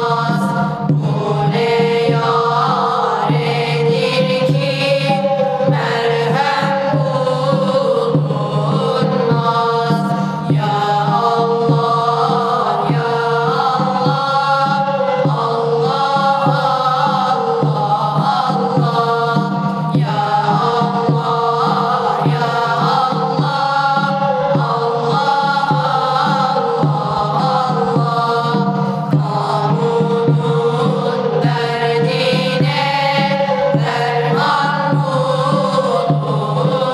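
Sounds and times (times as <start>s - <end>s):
boys singing a hymn: 0.0s - 36.9s.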